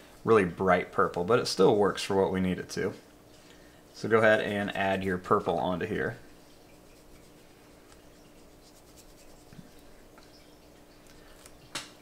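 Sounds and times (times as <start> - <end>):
low steady hum: 0.0 - 12.0
brush strokes on paper: 6.3 - 10.1.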